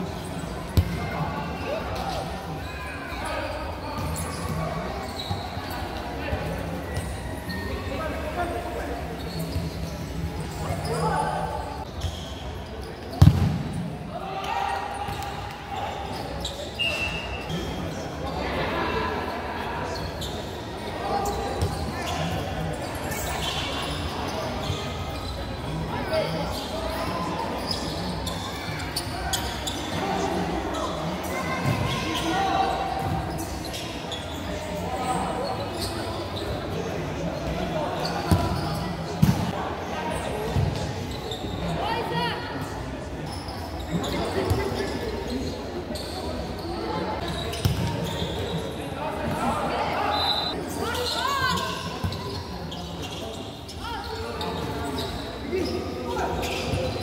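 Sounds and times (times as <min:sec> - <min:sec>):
spectators chatting: 0:00.0 - 0:57.0.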